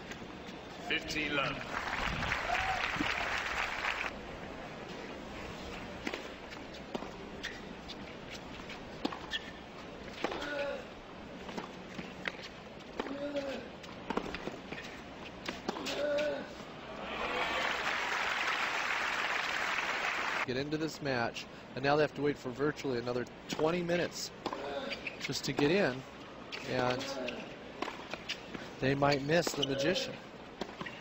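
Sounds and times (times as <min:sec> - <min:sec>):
crowd applause: 0:01.5 - 0:04.1, 0:17.0 - 0:20.5.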